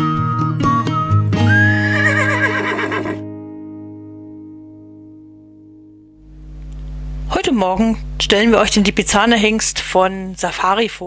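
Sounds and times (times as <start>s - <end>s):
horse whinny: 1.4s - 3.2s.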